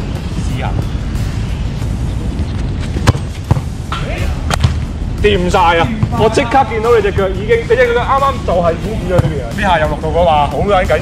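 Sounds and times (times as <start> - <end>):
steady low rumble: 0.0 - 10.6.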